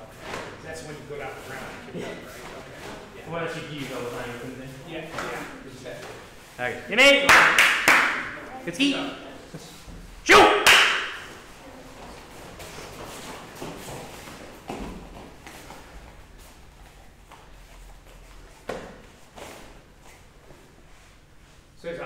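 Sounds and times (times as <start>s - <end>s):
bare feet on foam mats: 11.2s - 21.5s.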